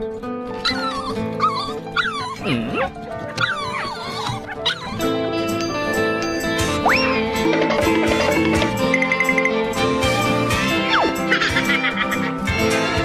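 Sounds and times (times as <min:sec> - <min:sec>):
background music: 0:00.0 - 0:13.0
dog whining and yipping: 0:00.6 - 0:07.2.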